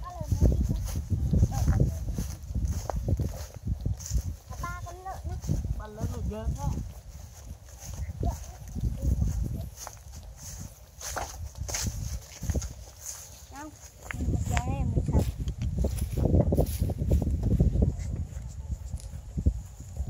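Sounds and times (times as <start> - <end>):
footsteps through grass: 0.0 - 20.0
wind buffeting microphone: 0.0 - 20.0.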